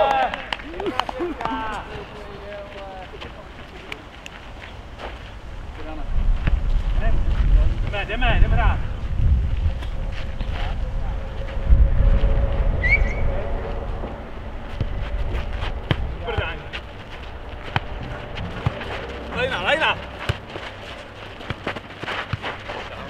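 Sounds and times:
wind rumbling on microphone: 0.7 - 21.6
ball knocking off feet and concrete: 14.8 - 16.8, 17.6 - 19.6, 20.2 - 23.0.

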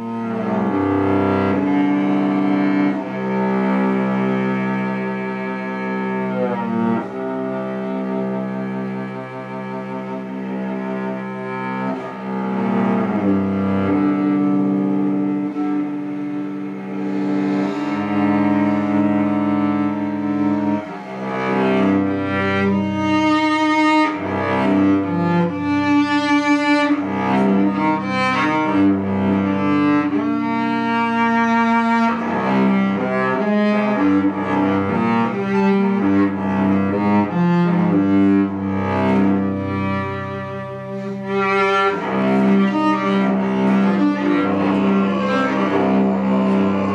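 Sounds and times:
bowed cello: 0.0 - 46.9.

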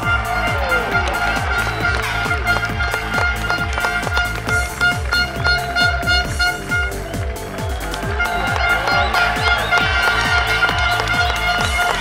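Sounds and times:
fast kick drum beat: 0.0 - 12.0.

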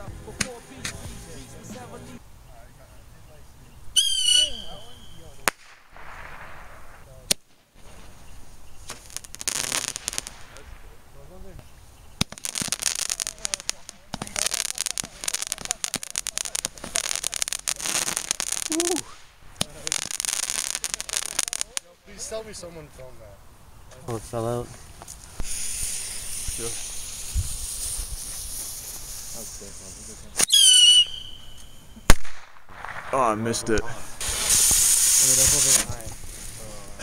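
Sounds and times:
fireworks crackling: 0.0 - 2.3, 3.5 - 23.2, 23.9 - 37.0
firework bangs: 4.0 - 8.2, 8.8 - 11.0, 12.2 - 22.3, 25.3 - 36.7.

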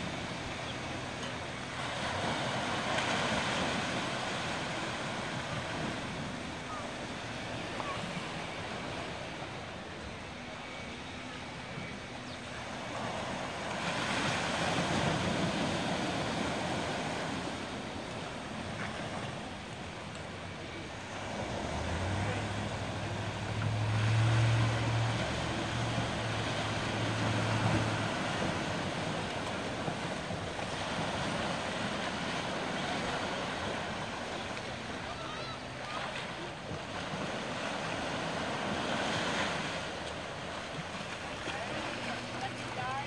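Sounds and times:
small waves breaking on shore: 0.0 - 43.0.

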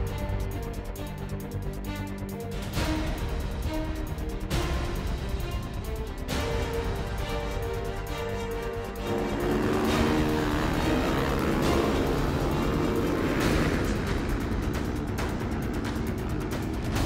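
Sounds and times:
music: 0.0 - 17.0
motorcycle engines revving: 7.6 - 17.0
motorcycle passing close: 9.0 - 17.0.

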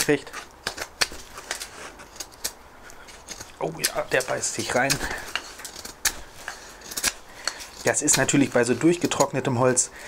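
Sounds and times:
knife carving wood: 0.0 - 10.0.

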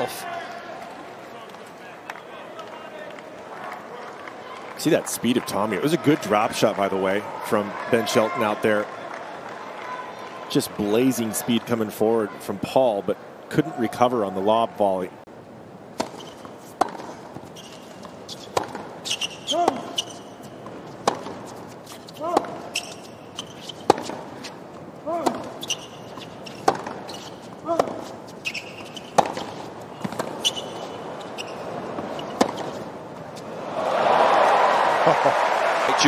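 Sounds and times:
crowd cheering: 0.0 - 12.8, 33.4 - 36.0
racquet striking tennis ball: 16.0 - 21.6, 22.2 - 24.5, 25.1 - 31.0, 31.9 - 32.9
shoes squeaking on court: 16.0 - 33.5.

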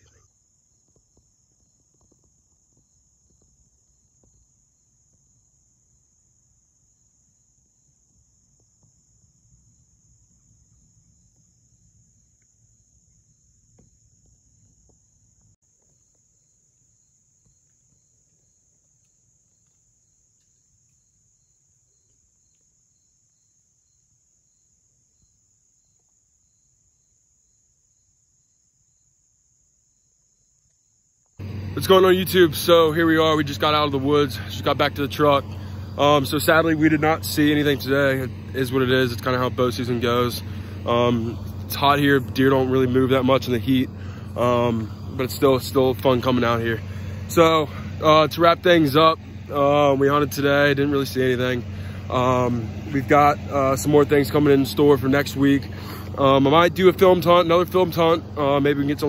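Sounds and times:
faint insects chirring: 0.0 - 59.0
faint pulsing chirp: 0.0 - 59.0.

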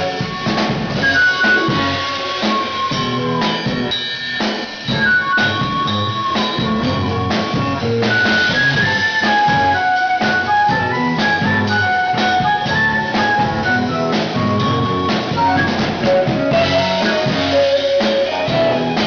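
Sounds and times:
drum kit beat: 0.0 - 19.0
electric guitar: 0.0 - 19.0
keyboard: 0.0 - 19.0.

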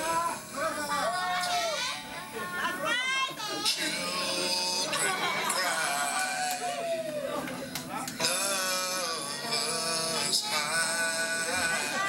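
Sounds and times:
excited voices calling out: 0.0 - 7.5, 8.1 - 12.0.

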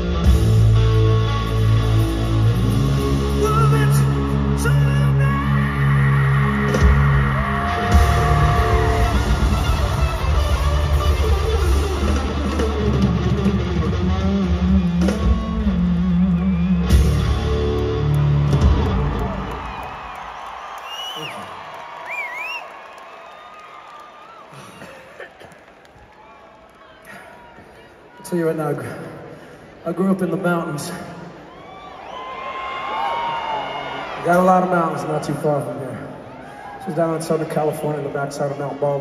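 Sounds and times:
live rock band playing loudly: 0.0 - 4.6, 6.6 - 19.5
arena crowd cheering: 1.5 - 13.6, 15.0 - 39.0
whistles from crowd: 16.2 - 17.2, 19.7 - 24.6.

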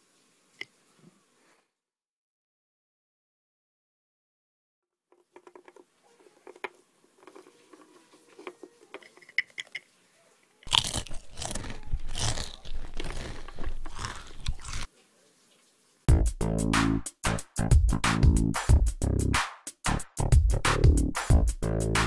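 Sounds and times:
person munching food: 10.7 - 14.9.

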